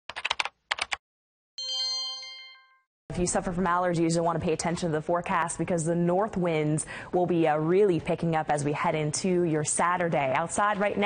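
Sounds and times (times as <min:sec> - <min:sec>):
computer keyboard typing: 0:00.1 - 0:01.0
bright bell-like chime: 0:01.6 - 0:02.9.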